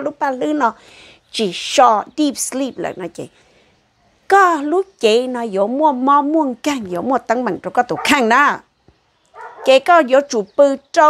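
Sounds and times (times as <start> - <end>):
woman talking animatedly: 0.0 - 3.3, 4.3 - 8.6, 9.6 - 11.0.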